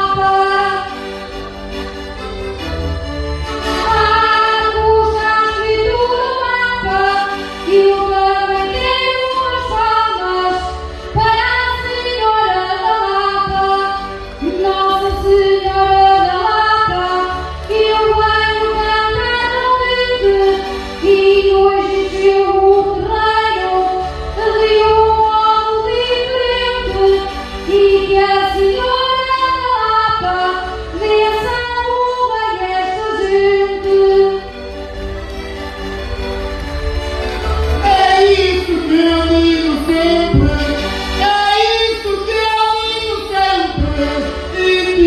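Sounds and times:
woman singing into microphone: 0:00.0 - 0:00.9, 0:03.8 - 0:34.5, 0:37.7 - 0:45.0
musical accompaniment: 0:00.0 - 0:45.0.

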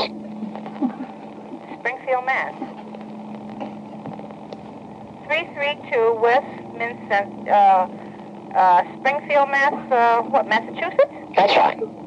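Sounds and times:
telephone line hum and hiss: 0:00.0 - 0:12.0.

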